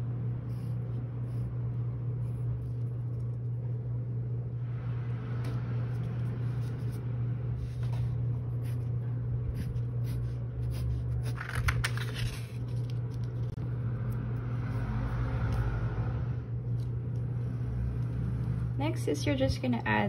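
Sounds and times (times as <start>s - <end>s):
steady low hum: 0.0s - 20.0s
paper rustling: 9.6s - 13.6s
scissors snipping paper: 9.7s - 14.2s.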